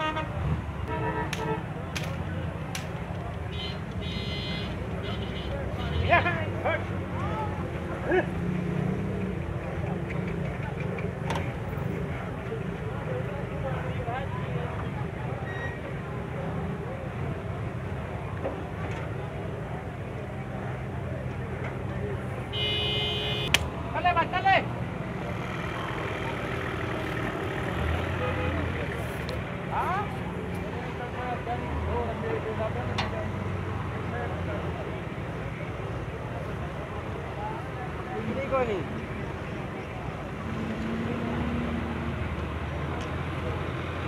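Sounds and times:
vehicle horn: 0.0s - 1.7s, 3.5s - 6.3s, 22.5s - 23.5s
vehicle engines running: 0.0s - 44.0s
voices: 0.0s - 44.0s.

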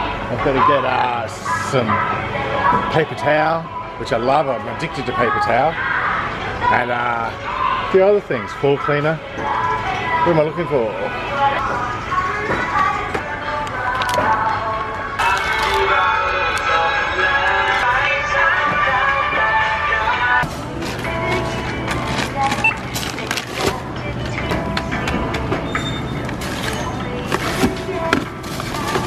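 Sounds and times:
music: 9.2s - 29.0s
clicks and knocks of goods handled: 20.4s - 29.0s.

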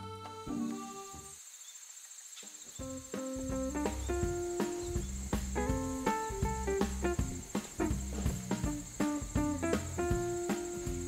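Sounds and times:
crickets chirring: 0.4s - 11.0s
bass line: 2.8s - 11.0s
plucked string melody: 5.6s - 11.0s.

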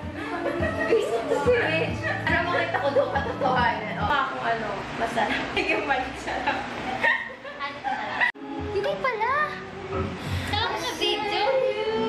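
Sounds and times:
young women laughing: 0.2s - 3.6s, 6.4s - 8.4s
women talking: 0.2s - 9.0s.

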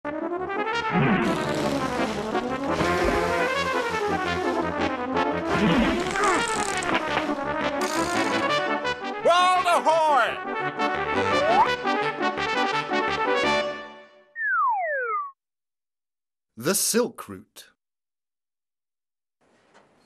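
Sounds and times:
brass theme music: 0.1s - 14.3s
person calling out: 9.2s - 10.4s.

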